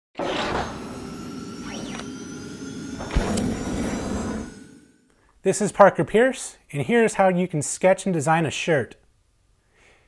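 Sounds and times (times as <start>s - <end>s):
whooshes: 0.2s - 5.0s
sweeping tone: 0.2s - 5.1s.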